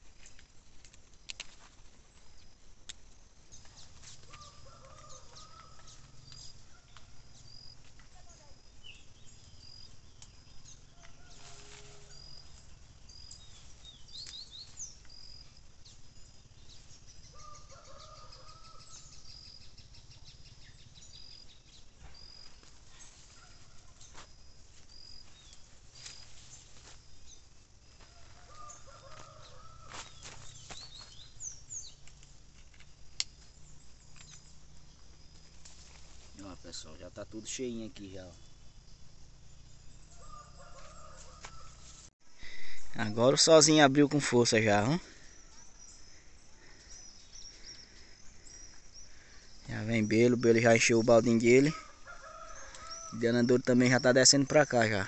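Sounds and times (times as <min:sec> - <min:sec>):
rustles and clicks: 0:00.0 - 0:08.5, 0:22.0 - 0:36.7.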